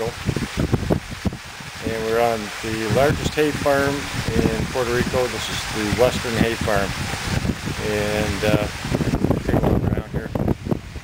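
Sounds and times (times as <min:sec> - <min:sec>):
wind buffeting microphone: 0:00.0 - 0:11.0
man's voice: 0:01.8 - 0:06.9, 0:07.8 - 0:08.8.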